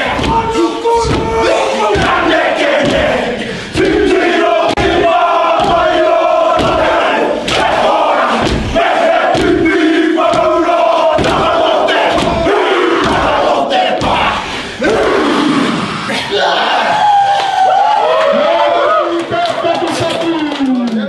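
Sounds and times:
men chanting in unison: 0:00.0 - 0:17.0
sharp slaps and stamps: 0:00.1 - 0:03.2, 0:03.8 - 0:15.1.

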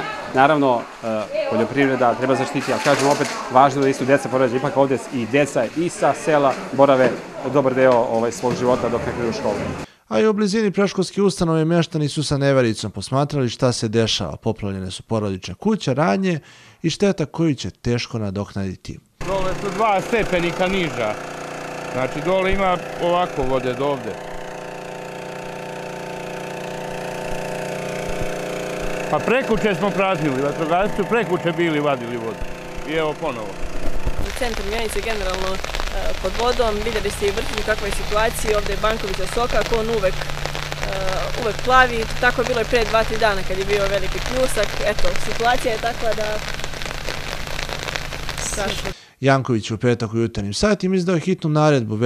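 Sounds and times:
rain falling on water: 0:00.3 - 0:07.0, 0:19.2 - 0:21.4, 0:26.6 - 0:49.0
motor humming steadily: 0:19.2 - 0:49.0.

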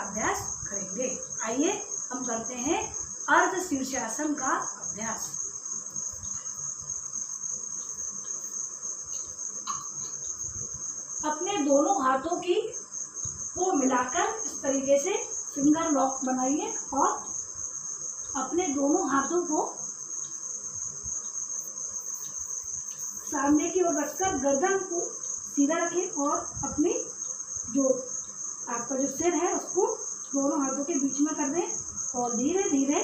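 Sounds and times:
crickets trilling: 0:00.0 - 0:33.0.

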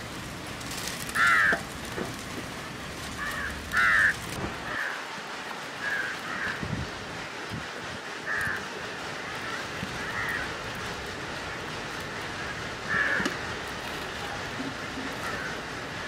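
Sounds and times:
crows cawing: 0:01.1 - 0:01.7, 0:03.2 - 0:05.1, 0:05.8 - 0:06.7, 0:08.2 - 0:10.7, 0:12.3 - 0:13.6, 0:14.9 - 0:15.7.

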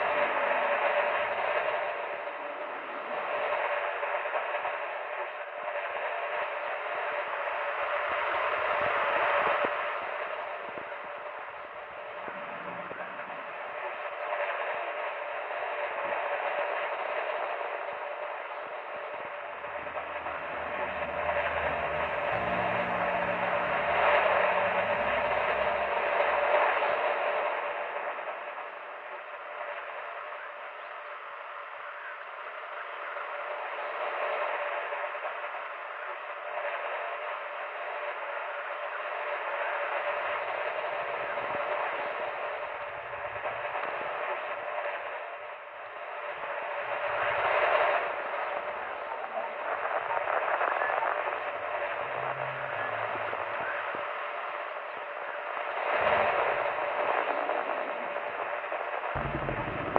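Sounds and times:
old radio static hiss: 0:00.0 - 0:59.9.

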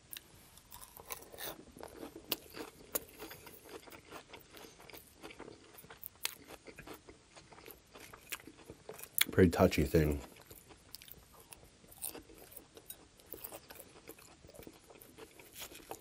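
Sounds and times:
chewing crisp salad: 0:00.1 - 0:16.0.

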